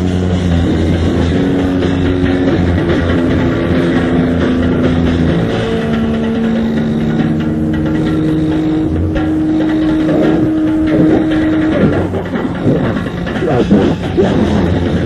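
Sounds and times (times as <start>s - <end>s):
distorted metal guitar droning: 0.0s - 15.0s.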